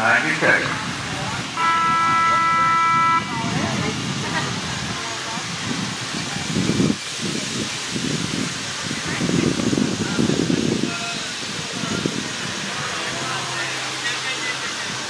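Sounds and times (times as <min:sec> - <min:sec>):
faint voices: 0:00.0 - 0:15.0
horn note: 0:01.5 - 0:03.8.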